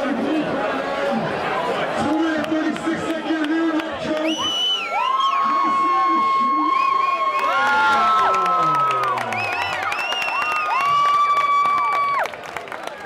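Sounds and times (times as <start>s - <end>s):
crowd cheering: 0.0s - 13.0s.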